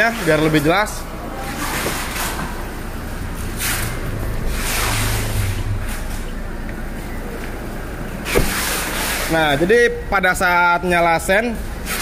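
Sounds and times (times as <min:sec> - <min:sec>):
steady low hum: 0:01.0 - 0:09.1.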